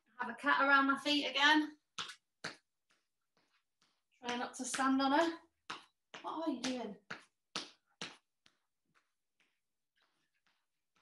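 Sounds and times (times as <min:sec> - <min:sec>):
footsteps on wooden floor: 0:01.9 - 0:11.0.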